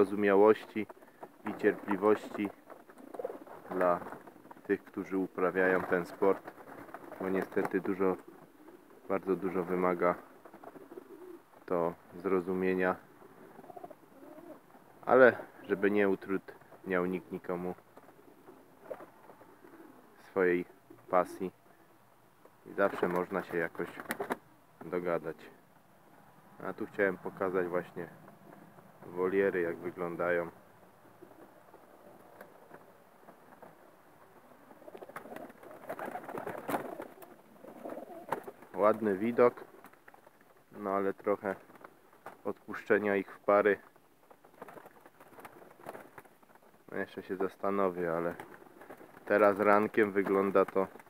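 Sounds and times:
pigeons cooing: 0:00.0 - 0:22.1, 0:27.2 - 0:40.8.

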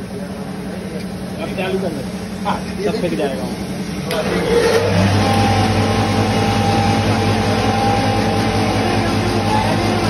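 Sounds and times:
foam cutter machine humming: 0:00.0 - 0:10.0
high-pitched machine whine: 0:01.4 - 0:10.0.

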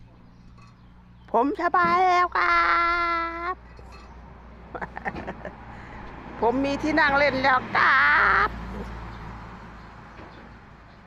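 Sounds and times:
high-pitched voice speaking: 0:01.8 - 0:03.6.

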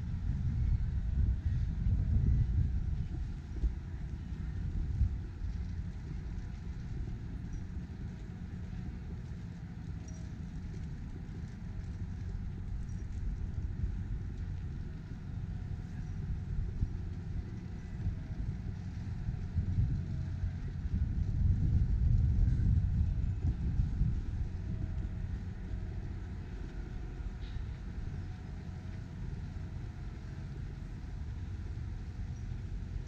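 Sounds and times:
low outdoor rumble: 0:00.0 - 0:33.0.

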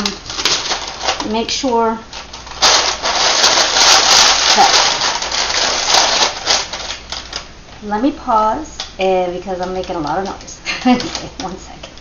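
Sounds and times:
paper being crumpled: 0:00.0 - 0:07.5.

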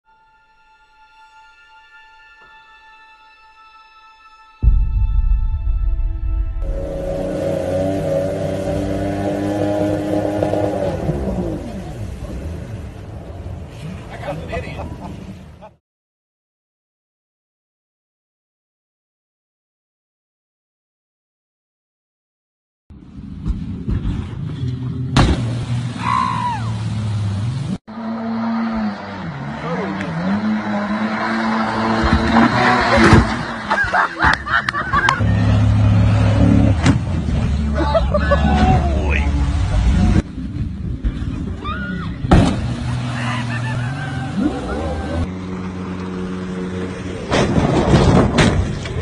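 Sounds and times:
sudden loud noise: 0:04.6 - 0:09.4
boat engine running: 0:06.2 - 0:14.1, 0:42.4 - 0:47.2
rushing water: 0:25.4 - 0:27.8
voices calling out: 0:37.7 - 0:40.2, 0:41.2 - 0:45.3.

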